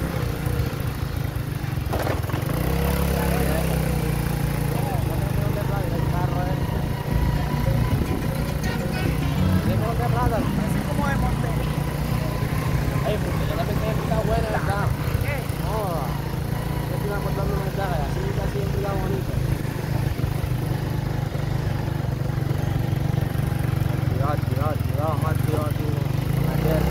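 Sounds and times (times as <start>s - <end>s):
small motorcycle engine running: 0.0s - 26.9s.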